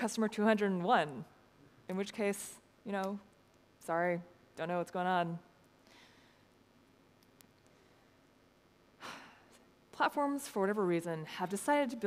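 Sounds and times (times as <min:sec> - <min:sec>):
woman talking: 0:00.0 - 0:01.3, 0:01.9 - 0:05.5, 0:10.0 - 0:12.0
breath into microphone: 0:05.8 - 0:06.5.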